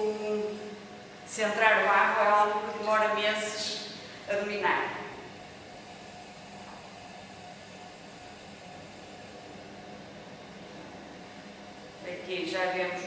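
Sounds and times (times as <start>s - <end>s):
potter's wheel humming: 0.0s - 13.0s.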